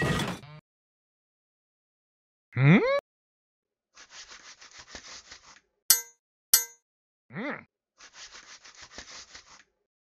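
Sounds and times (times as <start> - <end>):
sharp ringing clang: 5.9 - 6.8.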